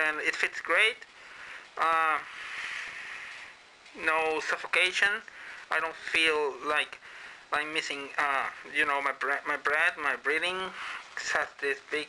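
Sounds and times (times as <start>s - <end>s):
breath through face mask: 1.2s - 3.6s, 10.8s - 11.2s.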